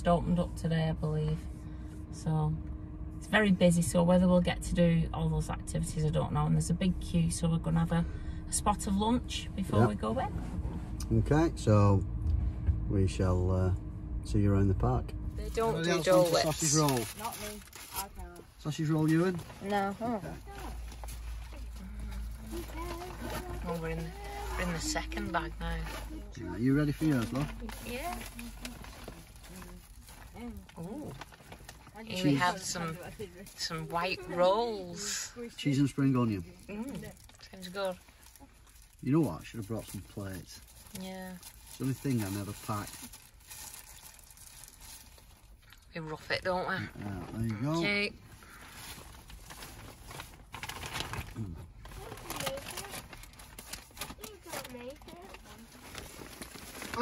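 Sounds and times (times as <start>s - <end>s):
plastic bags rustling: 15.6s - 45.6s, 48.2s - 57.0s
plastic packaging crinkling: 16.2s - 34.3s, 36.3s - 45.6s, 48.4s - 57.0s.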